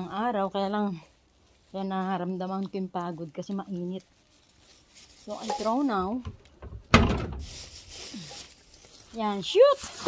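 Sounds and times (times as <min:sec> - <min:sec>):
rubbish thudding into plastic bin: 0:06.2 - 0:07.9.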